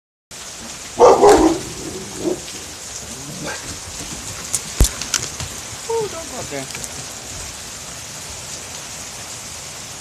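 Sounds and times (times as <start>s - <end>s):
heavy rain hissing: 0.3s - 10.0s
dog barking: 1.0s - 2.6s.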